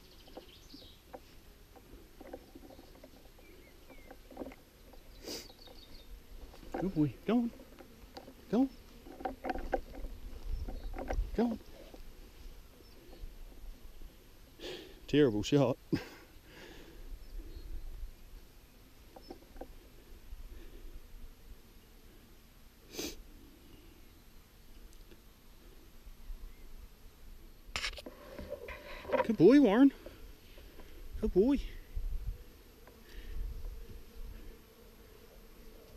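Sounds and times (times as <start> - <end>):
rustles and knocks: 0.0 - 13.7, 19.1 - 19.8
rustle through grass and ferns: 0.0 - 16.2, 17.0 - 35.9
low wind rumble: 31.0 - 32.5.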